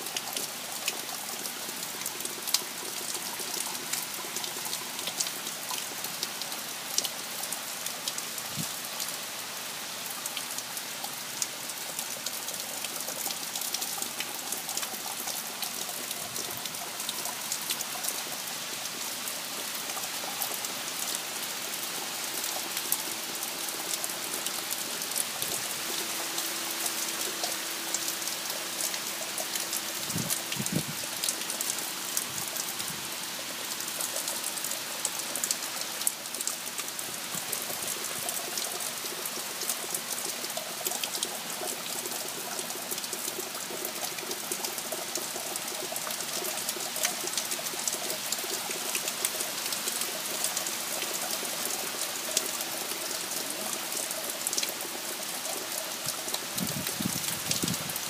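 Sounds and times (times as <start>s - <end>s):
heavy rain on trees and lawn: 0.0s - 58.0s.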